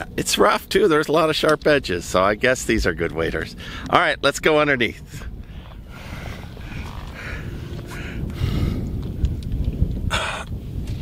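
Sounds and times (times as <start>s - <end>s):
microphone handling rumble: 1.4s - 11.0s
man breathing and grunting: 3.5s - 3.9s, 5.0s - 9.0s, 10.0s - 10.7s.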